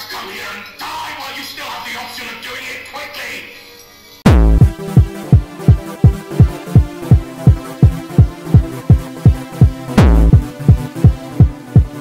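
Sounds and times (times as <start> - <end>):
heavy kick drum: 4.3 - 12.0
held synth chord: 4.3 - 12.0.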